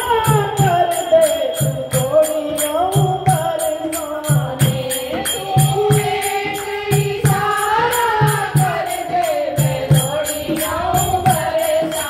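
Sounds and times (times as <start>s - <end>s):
jingling percussion: 0.0s - 12.0s
woman singing devotional song: 0.0s - 12.0s.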